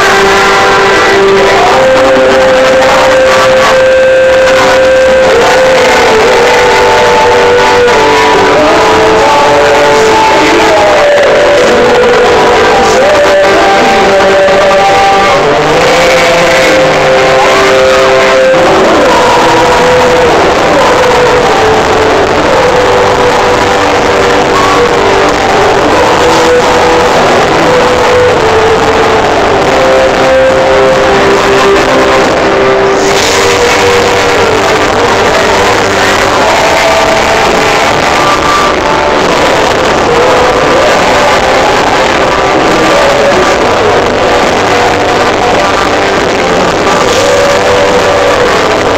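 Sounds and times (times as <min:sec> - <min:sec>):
pop-rock band playing live: 0:00.0 - 0:48.9.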